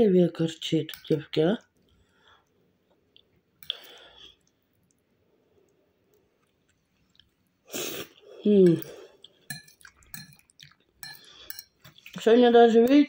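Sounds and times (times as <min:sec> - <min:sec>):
person chewing: 0:01.8 - 0:05.0, 0:05.6 - 0:12.2.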